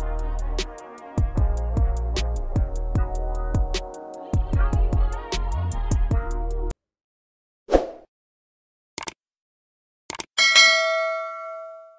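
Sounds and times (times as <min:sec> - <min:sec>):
notification bell ding: 0:10.4 - 0:11.9.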